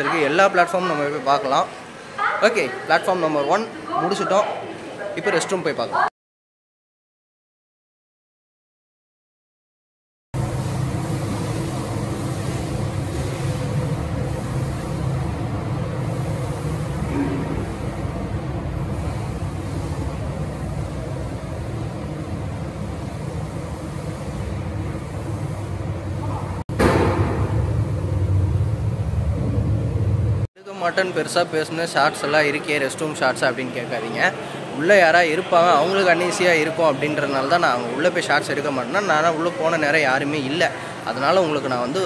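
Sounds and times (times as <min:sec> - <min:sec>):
low rumble with faint hum: 0:10.4 - 0:30.5.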